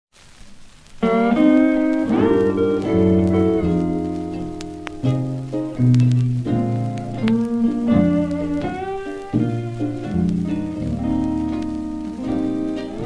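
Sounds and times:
vinyl record surface crackle: 0.1s - 13.0s
steel guitar chords: 1.0s - 13.0s.

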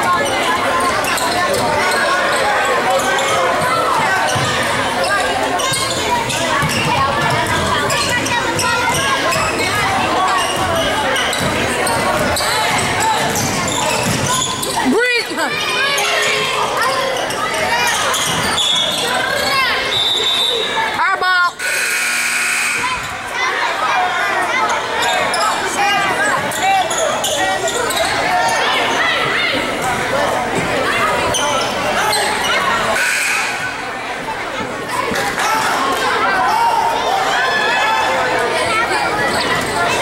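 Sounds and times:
voices in a gym: 0.0s - 40.0s
sneakers squeaking: 0.2s - 23.3s, 24.6s - 33.8s, 39.1s - 40.0s
shrill whistle: 19.9s - 20.8s.

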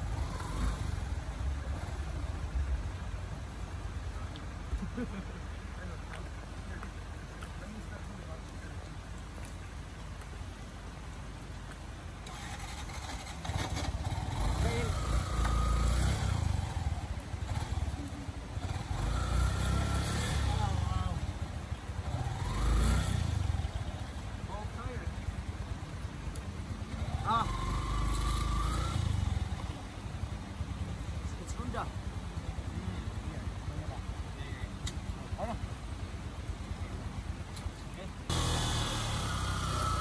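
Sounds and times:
small motorcycle engine revving: 0.0s - 2.0s, 12.2s - 24.2s, 26.9s - 29.8s, 38.3s - 40.0s.

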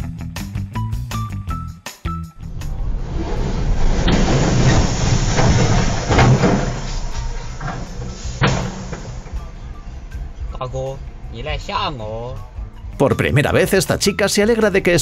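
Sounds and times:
car road noise: 2.3s - 13.0s
steel coils crashing and rolling: 2.4s - 9.8s.

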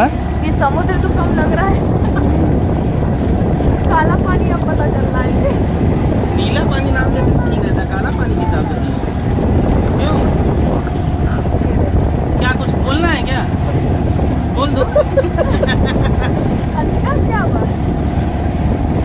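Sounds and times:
motorboat engine running: 0.0s - 19.0s
wind buffeting microphone: 0.0s - 19.0s.

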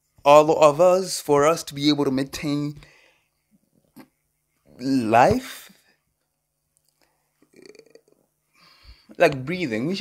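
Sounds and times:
man's low throat sound: 7.5s - 8.2s.

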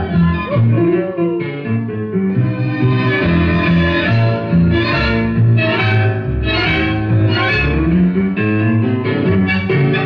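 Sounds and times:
tango music: 0.0s - 10.0s.

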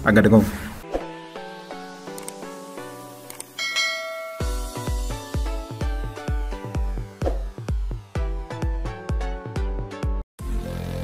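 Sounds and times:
light clicks: 2.1s - 2.4s, 3.2s - 3.6s
notification bell chime: 3.6s - 5.1s
electronic music with heavy bass: 4.3s - 11.0s.

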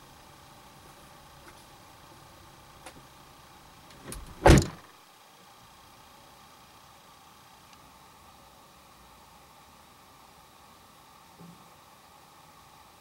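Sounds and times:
car door slamming: 4.0s - 4.9s.

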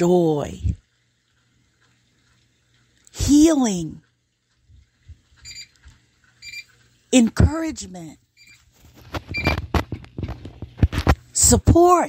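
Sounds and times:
high electronic beeps: 5.4s - 5.7s, 6.4s - 6.7s, 8.4s - 8.6s.

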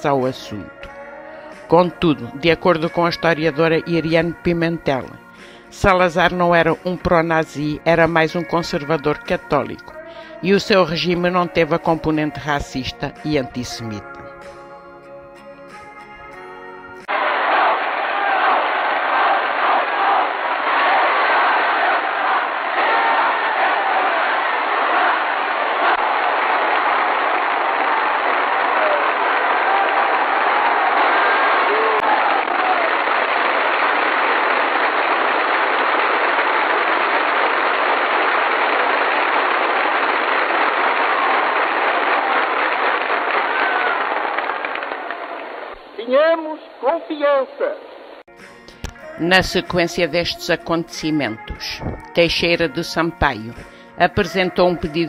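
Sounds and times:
crowd applauding and cheering: 17.0s - 46.0s.

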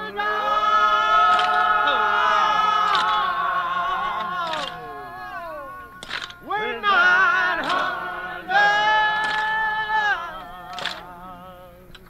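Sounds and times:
person singing unaccompanied: 0.0s - 12.0s.

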